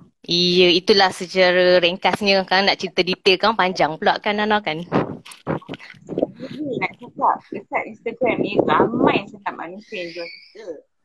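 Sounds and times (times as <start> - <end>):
person making broken vocal sounds: 4.8 - 10.8.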